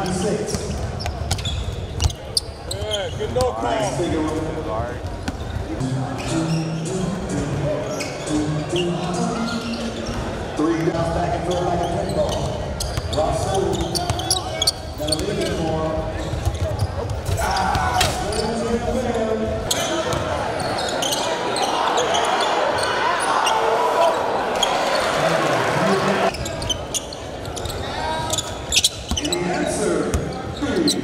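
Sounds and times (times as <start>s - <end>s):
crowd noise: 0.0s - 31.0s
voices echoing in a hall: 0.0s - 31.0s.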